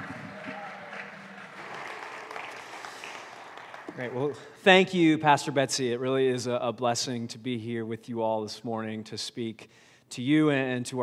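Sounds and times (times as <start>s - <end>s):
light applause: 0.0s - 4.6s.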